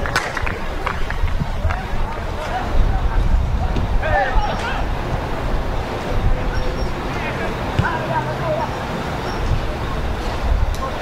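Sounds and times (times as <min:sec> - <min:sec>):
steady low rumble: 0:00.0 - 0:11.0
distant players shouting: 0:01.6 - 0:10.1
football being kicked: 0:07.7 - 0:08.0.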